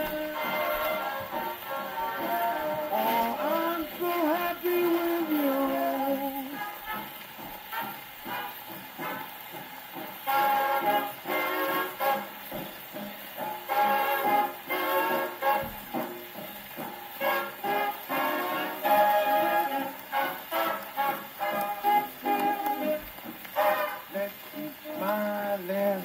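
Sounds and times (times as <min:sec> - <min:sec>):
record surface hiss: 0:00.0 - 0:26.0
swing big band playing: 0:00.0 - 0:26.0.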